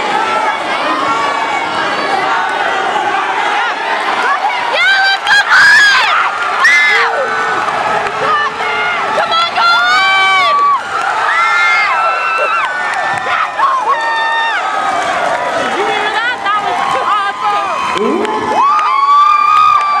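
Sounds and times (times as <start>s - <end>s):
loud held shout: 0.0s - 7.6s, 8.2s - 20.0s
spectators cheering and shouting: 0.0s - 20.0s.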